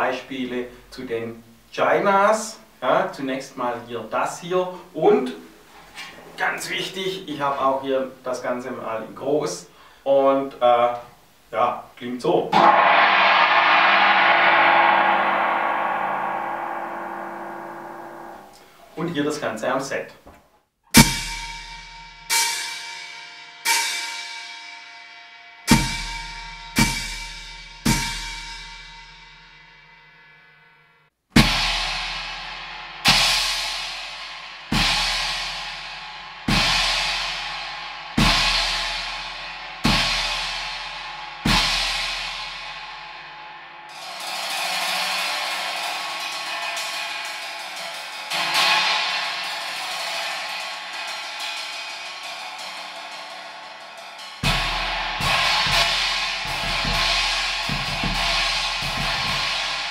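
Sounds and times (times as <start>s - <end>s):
china cymbals crashing: 12.5s - 18.9s, 21.0s - 30.3s, 31.4s - 59.9s.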